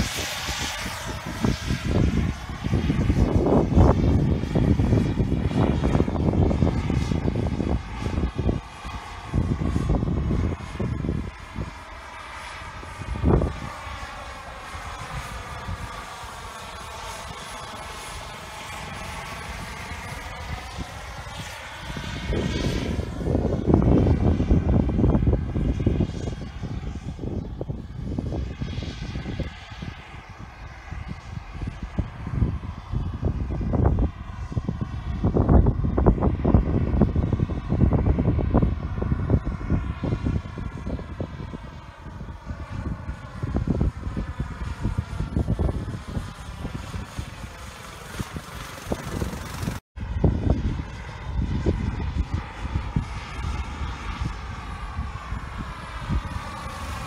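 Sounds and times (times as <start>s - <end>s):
helicopter flying past: 0.0s - 57.0s.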